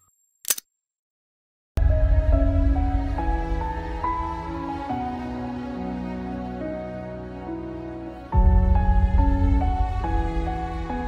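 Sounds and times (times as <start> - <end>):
soft background music: 1.8 - 11.0.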